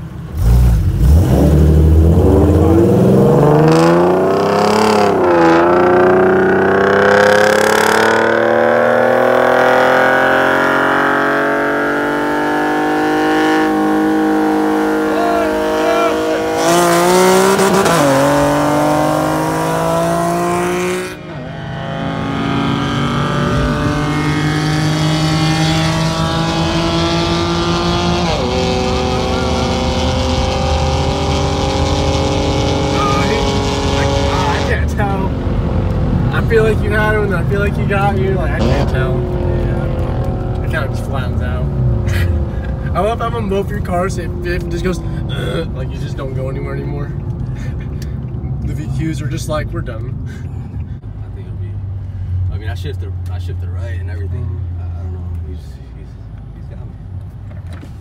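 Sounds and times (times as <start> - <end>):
engines at full throttle: 0.0 - 51.2.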